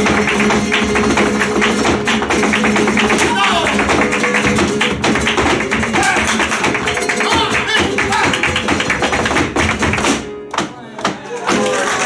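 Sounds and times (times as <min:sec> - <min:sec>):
flamenco guitars: 0:00.0 - 0:12.0
hand clapping: 0:00.0 - 0:12.0
shoes striking wooden stage: 0:00.0 - 0:12.0.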